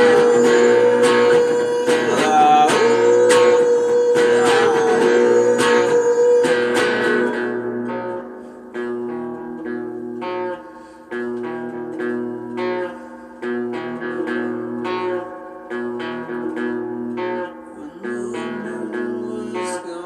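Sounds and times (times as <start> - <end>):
guitar chords strummed: 0.0 - 20.0.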